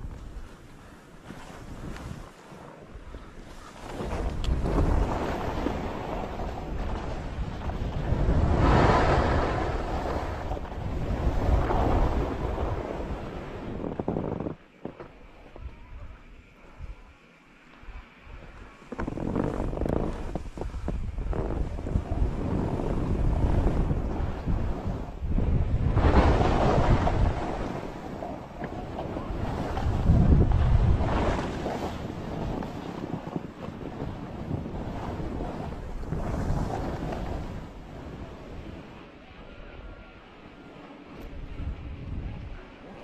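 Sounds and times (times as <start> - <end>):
skis scraping over snow: 0.0 - 16.8, 18.4 - 38.9
wind noise on microphone: 0.0 - 17.1, 17.9 - 40.2, 41.0 - 43.0.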